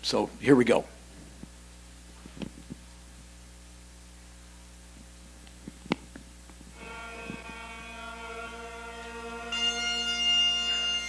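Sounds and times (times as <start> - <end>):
bagpipe chanter melody: 6.8 - 11.0
bagpipe drones: 6.8 - 11.0.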